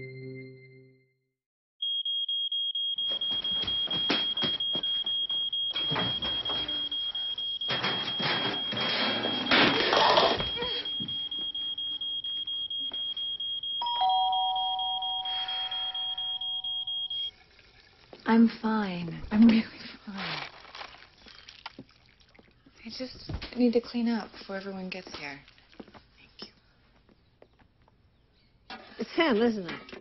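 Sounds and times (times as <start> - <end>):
smoke alarm high-pitched tone: 1.8 - 17.3.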